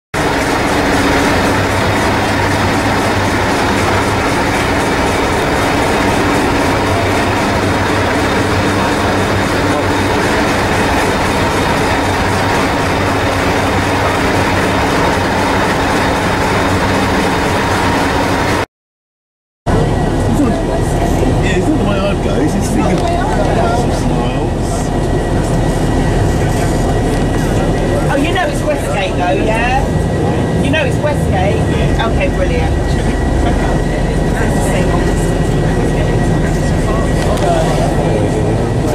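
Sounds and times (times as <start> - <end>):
train rumbling: 0.2 - 18.6, 19.7 - 38.9.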